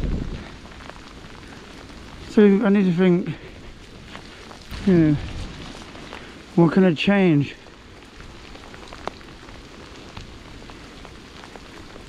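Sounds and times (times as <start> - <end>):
bicycle tyres on wet path: 0.0 - 12.0
rain hissing: 0.0 - 12.0
low rumble: 3.2 - 6.8.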